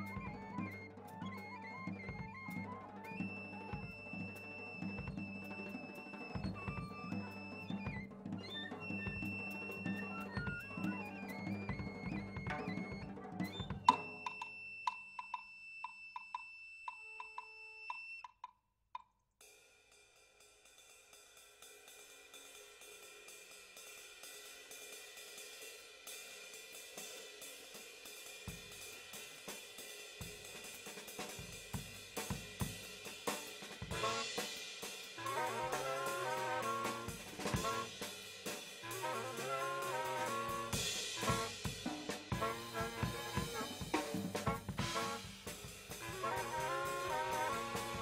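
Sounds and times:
cymbal and hi-hat strokes: 0:19.4 - 0:35.2, 0:37.9 - 0:38.9
saxophone line: 0:33.9 - 0:34.5, 0:35.2 - 0:38.1, 0:38.8 - 0:48.0.

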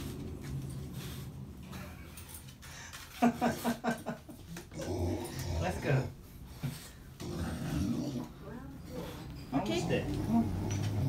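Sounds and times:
dog grumbling low: 0:04.6 - 0:06.2, 0:07.2 - 0:08.4, 0:09.5 - 0:11.0.

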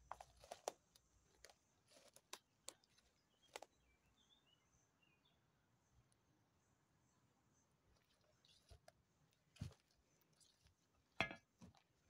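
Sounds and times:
twigs and leaves crackling underfoot: 0:00.0 - 0:03.8, 0:08.4 - 0:10.9
faint bird chirps: 0:02.8 - 0:11.0.

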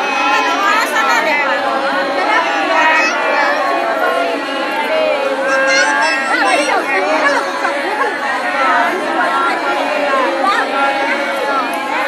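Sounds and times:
crowd of women chattering: 0:00.0 - 0:12.0.

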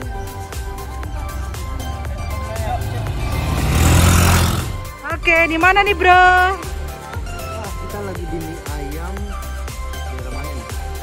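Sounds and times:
motor scooter engines: 0:00.0 - 0:05.2
background music: 0:00.0 - 0:11.0
road noise: 0:00.0 - 0:11.0.

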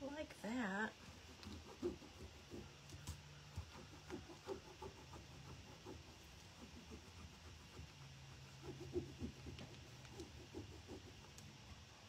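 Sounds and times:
steady low hum: 0:00.0 - 0:12.0
burnishing tool scratching: 0:00.6 - 0:11.7.

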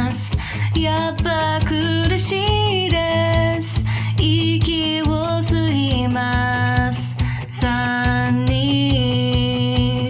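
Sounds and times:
pop-rock song instruments: 0:00.0 - 0:10.0.

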